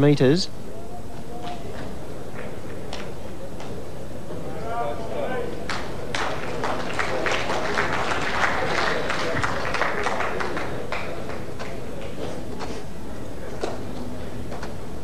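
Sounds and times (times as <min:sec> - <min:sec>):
audience applauding: 0:05.7 - 0:11.8.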